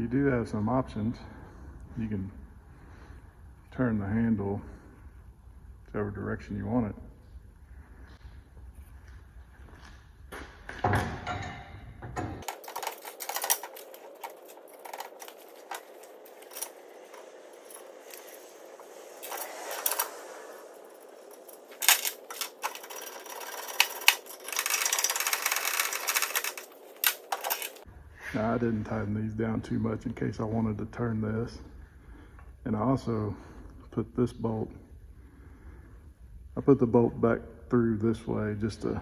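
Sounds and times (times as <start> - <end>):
metal clicks and knocks: 10.7 - 17.2, 21.6 - 27.8
rapid clicking: 21.3 - 27.8.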